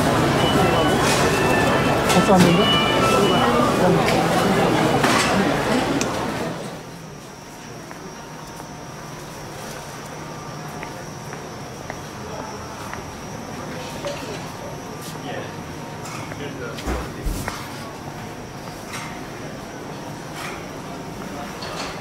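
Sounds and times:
murmur of voices: 0.0s - 8.8s
faint high tone: 0.3s - 4.8s.

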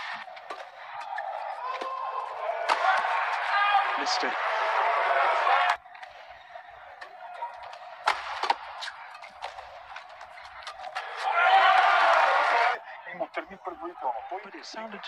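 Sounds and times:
racket hitting shuttlecock: 0.0s - 3.7s, 5.5s - 11.4s
arena hall noise: 0.0s - 15.0s
crowd cheering: 0.0s - 15.0s.

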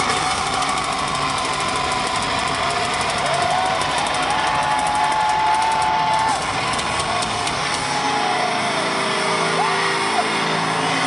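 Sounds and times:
concert crowd roaring: 0.0s - 11.0s
low drone from stage: 0.0s - 11.0s.

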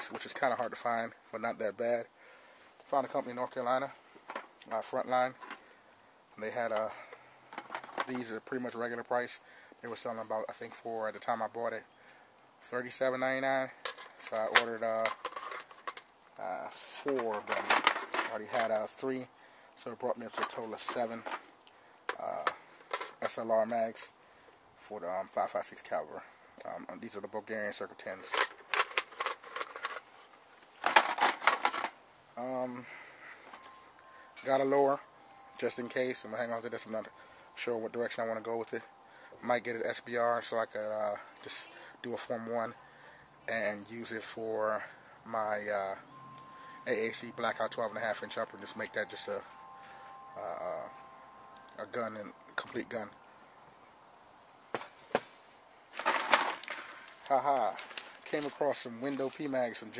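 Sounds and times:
plastic magazines clacking: 16.8s - 18.8s, 20.2s - 23.4s, 28.1s - 32.0s, 54.8s - 59.9s
magazines clattering into plastic tub: 16.9s - 18.8s, 20.3s - 21.5s, 30.8s - 32.0s, 55.9s - 59.9s
plastic wrapping crinkling: 55.9s - 59.6s.

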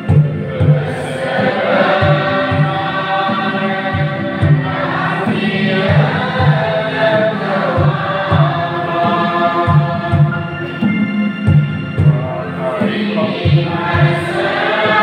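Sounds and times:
drum beat: 0.0s - 15.0s
people singing a hymn: 0.0s - 15.0s.

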